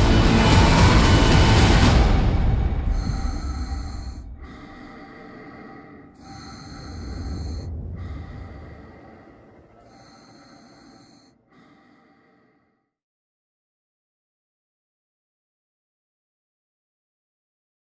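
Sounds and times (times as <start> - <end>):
low rumble: 0.0 - 11.0
breathing inside a helmet: 2.8 - 12.9.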